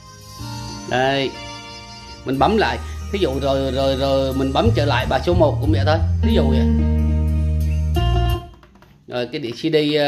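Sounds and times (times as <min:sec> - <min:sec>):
guitar music over loudspeakers: 0:00.0 - 0:08.6.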